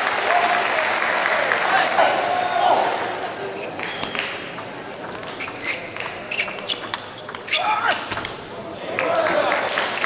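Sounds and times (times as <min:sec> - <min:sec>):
table tennis ball clicking: 0:04.6 - 0:08.4.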